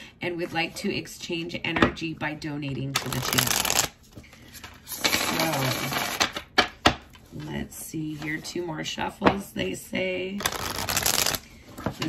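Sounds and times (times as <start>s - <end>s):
cards shuffling: 3.0s - 6.5s, 10.4s - 12.0s
cards slapping together: 10.4s - 11.4s.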